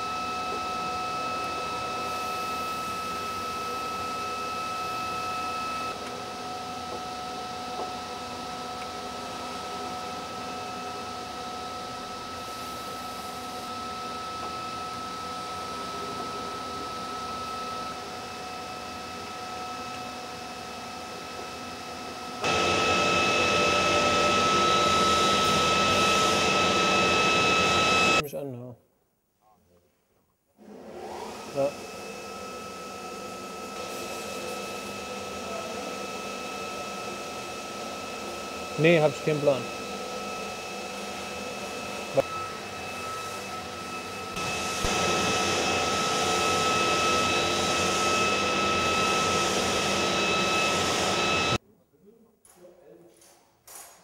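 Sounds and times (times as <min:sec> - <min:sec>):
electric blower whirring: 0:00.0 - 0:28.2, 0:30.6 - 0:51.6.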